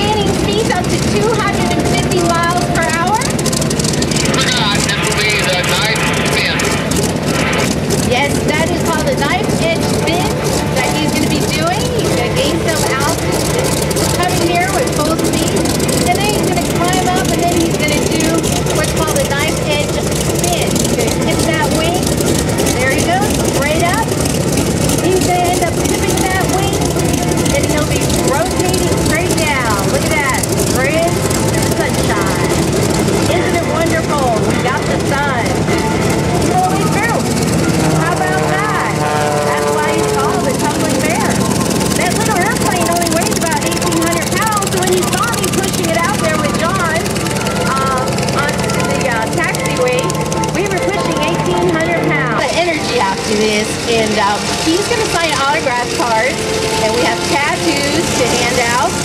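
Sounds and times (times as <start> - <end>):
piston aircraft engines droning: 0.0 - 59.0.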